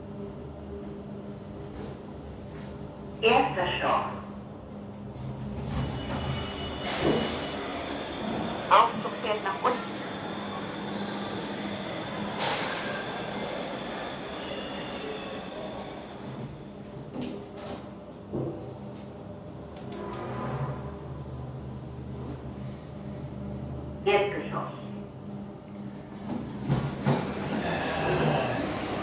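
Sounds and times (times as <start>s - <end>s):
elevator drive hum: 0.0s - 29.0s.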